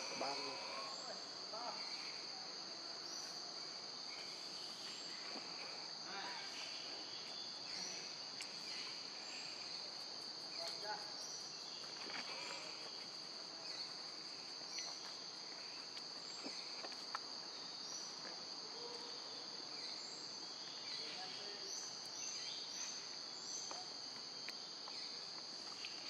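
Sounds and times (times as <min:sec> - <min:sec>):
insect chorus drone: 0:00.0 - 0:26.0
short insect chirps: 0:03.0 - 0:18.3, 0:19.8 - 0:26.0.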